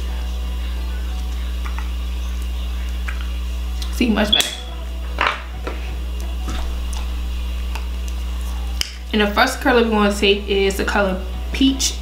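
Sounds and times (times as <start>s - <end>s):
low hum: 0.4s - 9.5s.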